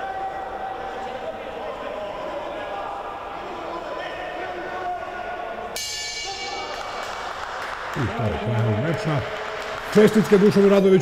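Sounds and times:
boxing ring bell: 5.8 - 7.6.

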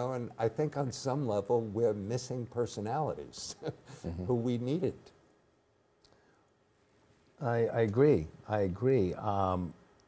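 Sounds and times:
man speaking: 0.0 - 5.2, 7.4 - 9.8.

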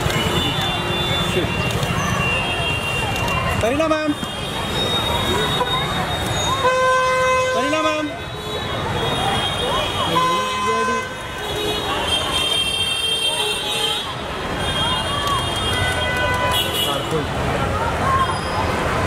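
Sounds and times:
people talking: 0.0 - 6.7, 7.6 - 19.0
street noise: 0.0 - 19.0
vehicle horns honking: 4.1 - 17.2.

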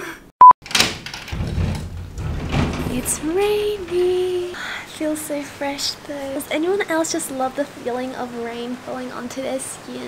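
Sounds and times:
sliding glass door rolling open: 0.7 - 6.9.

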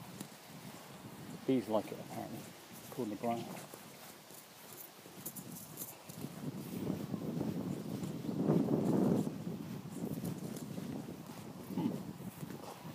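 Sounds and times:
footsteps through long grass: 0.0 - 12.9.

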